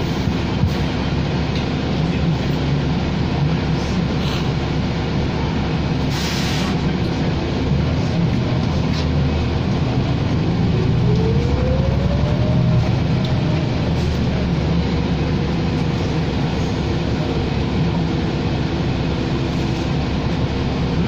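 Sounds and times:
bus engine drone: 0.0s - 21.0s
road noise: 0.0s - 21.0s
brief hiss: 6.1s - 6.8s
rising whine: 9.1s - 18.1s.

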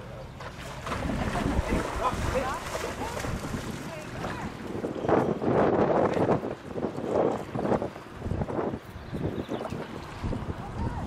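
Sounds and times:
small waves lapping: 0.0s - 11.0s
wind buffeting microphone: 0.3s - 11.0s
people talking: 1.0s - 4.6s, 10.6s - 11.0s.

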